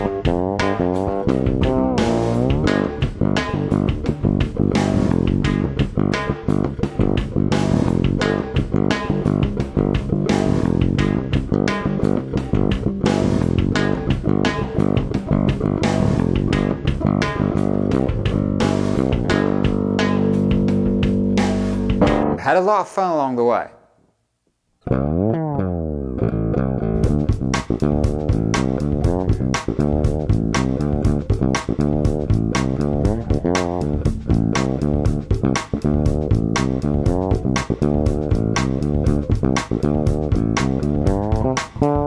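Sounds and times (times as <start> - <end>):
fretless electric bass: 0.0 - 22.4, 24.8 - 42.0.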